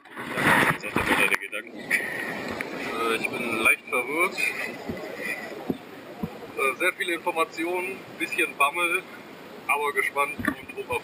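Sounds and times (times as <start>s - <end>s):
man speaking: 2.8s - 4.7s, 6.6s - 9.0s, 9.7s - 11.0s
soft low thumps: 4.8s - 6.6s.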